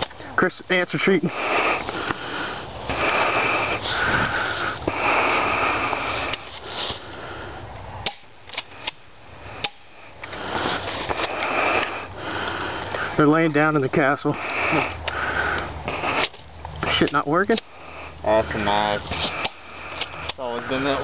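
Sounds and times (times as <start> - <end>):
heavy breathing: 1.0 - 8.0, 8.6 - 13.3, 14.2 - 17.0, 17.6 - 21.0.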